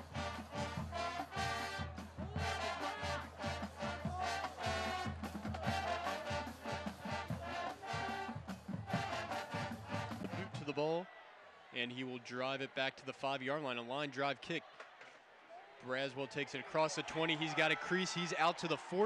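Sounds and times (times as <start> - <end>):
brass melody: 0.0 - 10.6
marching band playing: 0.0 - 10.6
drum beat: 0.1 - 10.6.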